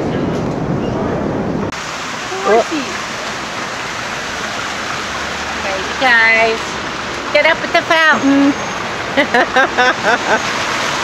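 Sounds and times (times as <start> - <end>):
street noise: 0.0 - 11.0
fountain water splashing: 1.7 - 11.0.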